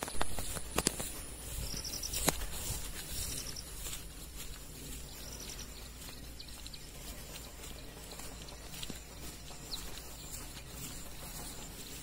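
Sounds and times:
small birds chirping: 0.0s - 12.0s
wind rumble on microphone: 0.0s - 12.0s.

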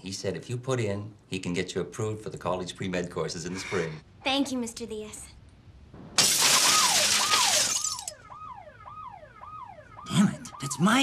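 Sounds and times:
glass shattering: 6.2s - 8.2s
car alarm wailing: 6.6s - 11.0s.

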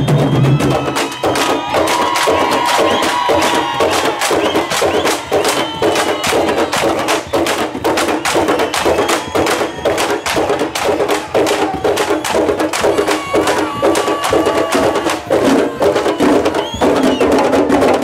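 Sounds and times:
hand and stick drumming: 0.0s - 18.0s.

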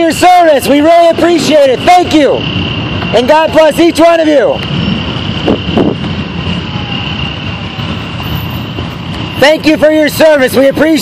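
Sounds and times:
vehicle engines low rumble: 0.0s - 11.0s.

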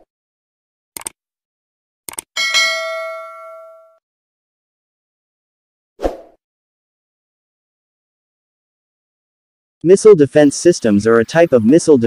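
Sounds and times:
short clicks: 1.0s - 1.2s, 2.1s - 2.3s
notification bell ding: 2.4s - 4.0s.

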